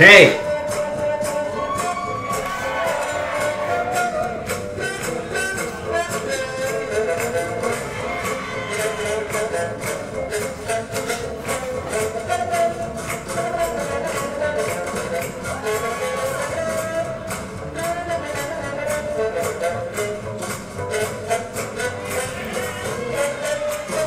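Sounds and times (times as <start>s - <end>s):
swing jazz music: 0.0s - 24.0s.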